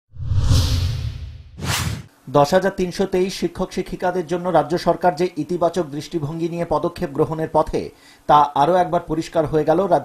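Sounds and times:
whoosh sound effects: 0.1 - 2.1
low rumble: 0.2 - 1.6.

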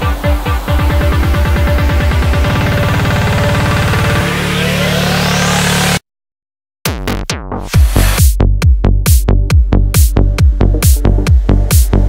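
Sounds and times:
psytrance synth bassline: 0.0 - 6.0, 6.9 - 12.0
rising synth sweep: 0.0 - 6.0.

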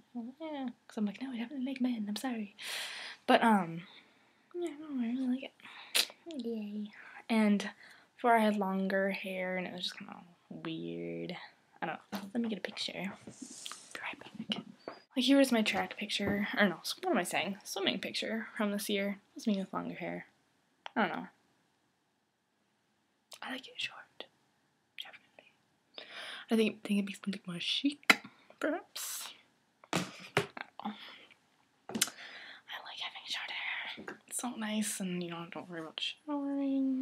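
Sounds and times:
woman whispering softly: 13.0 - 14.6, 23.4 - 24.3, 25.0 - 25.5, 32.6 - 37.0.

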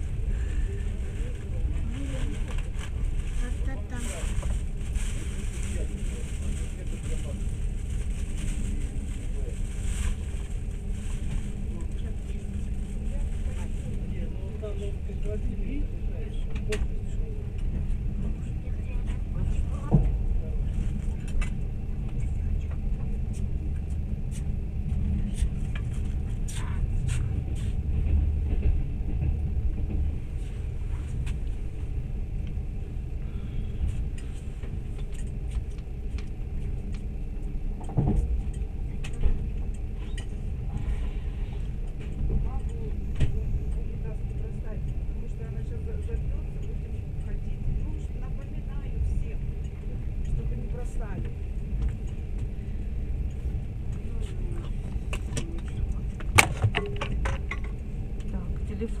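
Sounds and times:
train rumbling on track: 0.0 - 59.0
train clicks and knocks: 10.0 - 31.8, 34.0 - 40.9, 41.5 - 52.6, 53.3 - 59.0.

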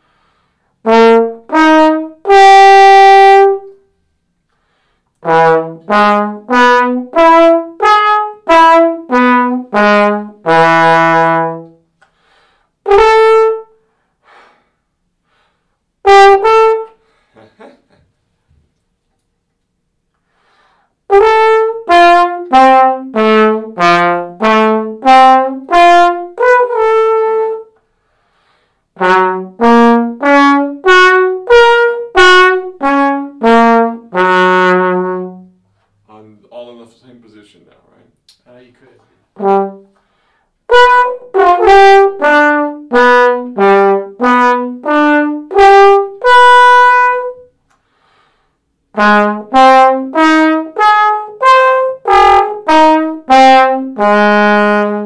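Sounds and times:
trombone playing tongued notes: 0.8 - 3.9, 5.2 - 11.8, 12.8 - 13.8, 16.0 - 17.1, 21.1 - 27.8, 28.9 - 35.6, 39.3 - 47.6, 48.9 - 55.0.

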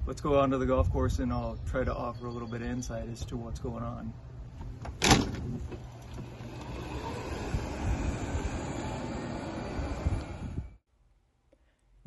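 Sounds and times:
golf cart driving: 5.4 - 10.8.

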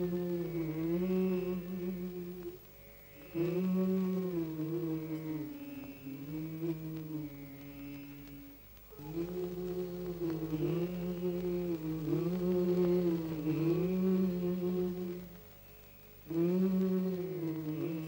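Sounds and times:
person chanting long notes: 0.0 - 18.0.

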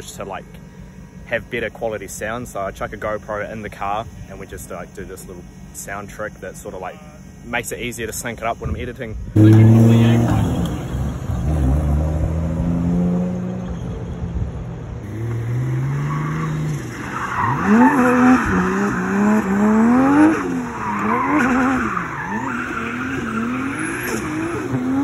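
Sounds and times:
car engine revving: 9.2 - 25.0
tyres squealing: 15.8 - 25.0.

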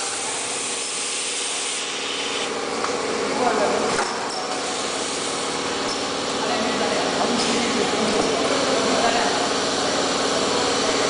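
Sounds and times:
machine running steadily: 0.0 - 11.0.

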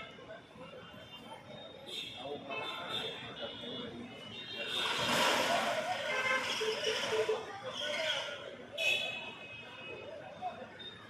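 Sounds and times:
voices: 0.0 - 11.0.

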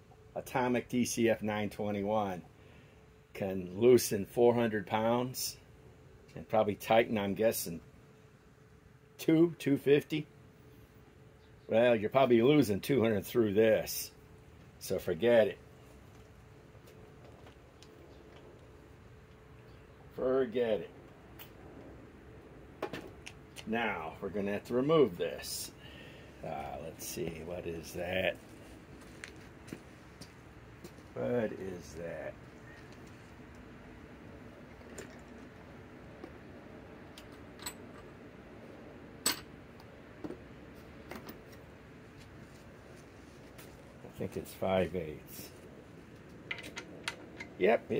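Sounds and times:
faint background noise: 0.0 - 47.9
thin steady hum: 0.0 - 47.9.

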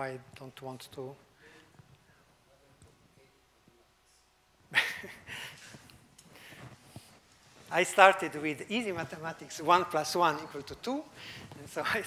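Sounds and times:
laughter: 4.7 - 5.8.

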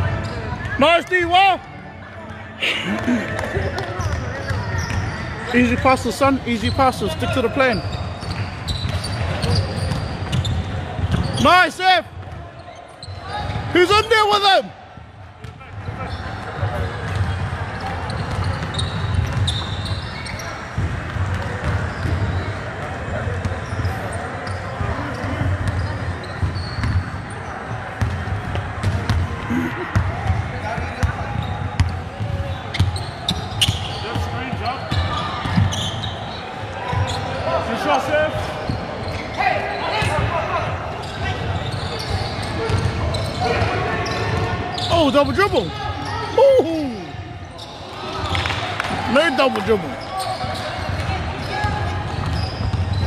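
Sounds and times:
shouts and chatter: 0.0 - 15.0, 21.8 - 53.0.

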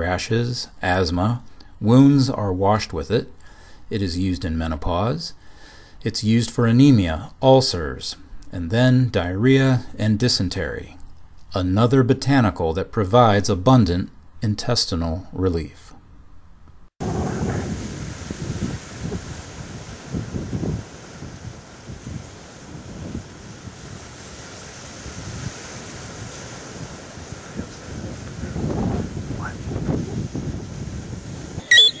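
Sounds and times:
sea surf: 17.0 - 32.0
wind buffeting microphone: 17.0 - 32.0
short high-pitched chirp: 31.6 - 32.0.

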